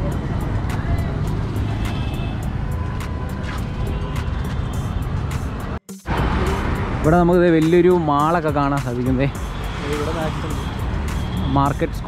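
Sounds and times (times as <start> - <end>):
passing cars and motorbikes: 0.0 - 12.0.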